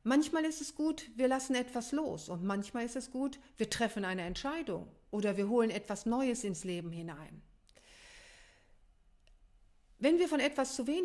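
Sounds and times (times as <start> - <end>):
woman's soft breath: 7.7 - 8.8.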